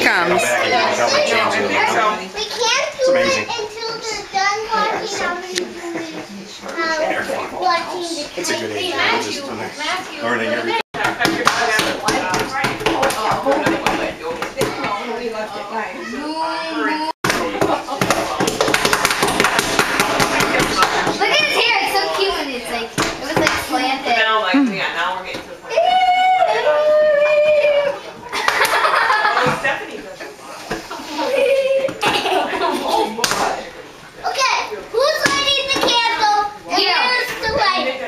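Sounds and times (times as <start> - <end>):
children chattering: 0.0 - 10.8, 11.6 - 18.4, 20.0 - 25.0, 25.6 - 38.0
children calling out excitedly: 16.0 - 17.2, 25.7 - 28.0
hands smacking: 18.0 - 21.2.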